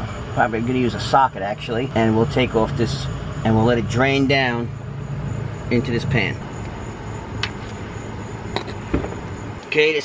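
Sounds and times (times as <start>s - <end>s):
low hum: 0.0s - 9.6s.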